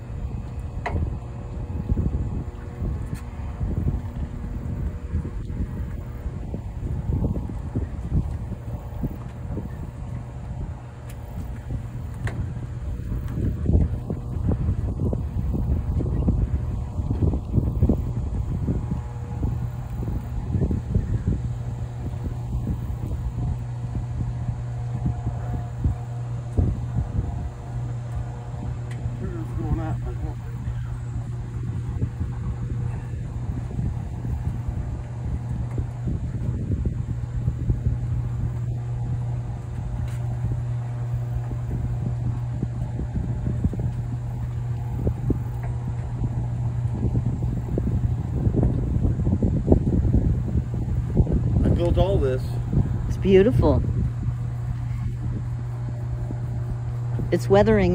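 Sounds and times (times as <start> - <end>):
steady low hum: 0.0 - 57.9
wind buffeting microphone: 0.0 - 57.9.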